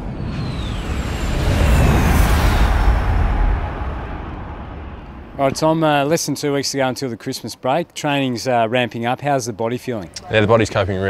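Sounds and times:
high jet whines falling in pitch: 0.0s - 6.2s
jet flyby rumble: 0.0s - 6.4s.

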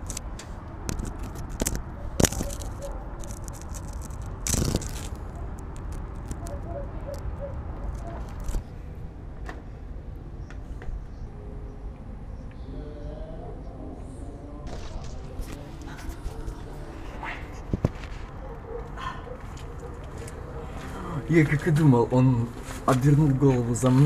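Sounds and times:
wind rumble on microphone: 12.7s - 18.4s.

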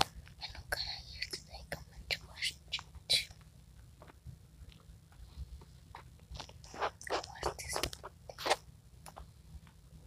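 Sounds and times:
person whispering: 0.4s - 3.4s, 6.6s - 8.6s.

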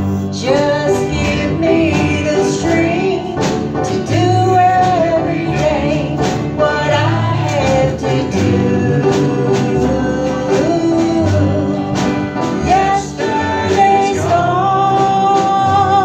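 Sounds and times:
country gospel band playing: 0.0s - 16.0s
drum kit: 0.0s - 16.0s
male and female voices singing: 0.0s - 16.0s
upright bass: 0.0s - 16.0s.

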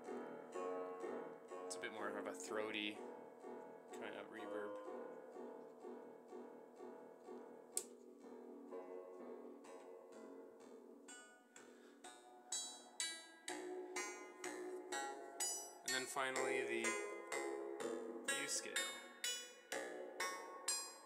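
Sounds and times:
synthesizer notes with spring reverb: 0.0s - 21.0s.

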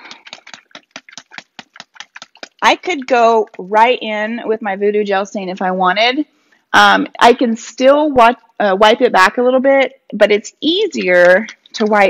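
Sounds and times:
container being shaken: 0.0s - 3.7s, 11.0s - 12.0s.

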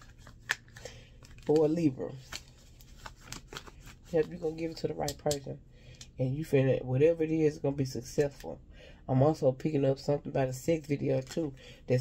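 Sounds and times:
cards shuffling: 0.0s - 5.4s.

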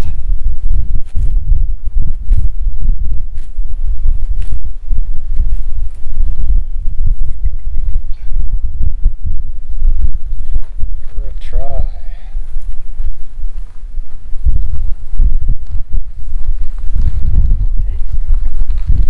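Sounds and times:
rustling grass and plants: 0.0s - 19.0s
wind buffeting microphone: 0.0s - 19.0s.

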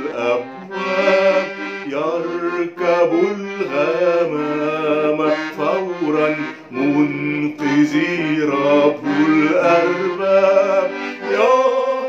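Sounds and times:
accordion playing chords: 0.0s - 12.0s
man singing a hymn: 0.0s - 12.0s.

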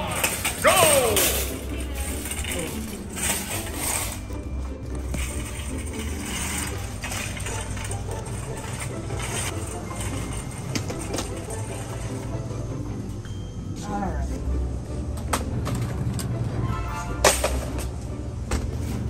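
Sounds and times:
shopping cart rattling: 0.0s - 12.9s, 17.2s - 18.0s.

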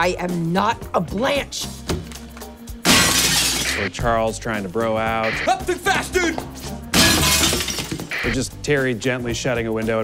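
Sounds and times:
background music: 0.0s - 10.0s
glass shattering: 2.8s - 3.8s, 6.9s - 8.2s.

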